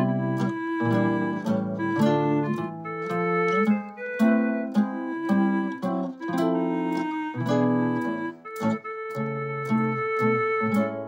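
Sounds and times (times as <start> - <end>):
backing track with plucked chords: 0.0 - 11.0
electronic wind instrument melody: 0.0 - 11.0.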